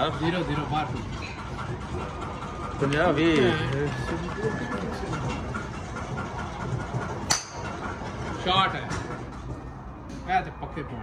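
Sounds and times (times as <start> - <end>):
murmur of background voices: 0.0 - 11.0
golf club striking ball: 7.3 - 7.6.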